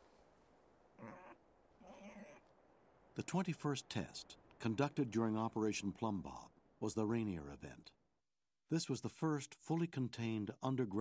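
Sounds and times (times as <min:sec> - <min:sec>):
pig crying: 0:01.0 - 0:02.4.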